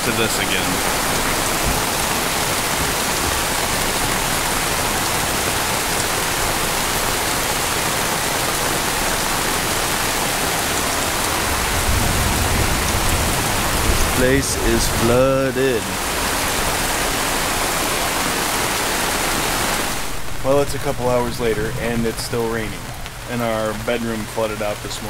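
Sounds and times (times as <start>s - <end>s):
heavy rain falling: 0.0s - 25.0s.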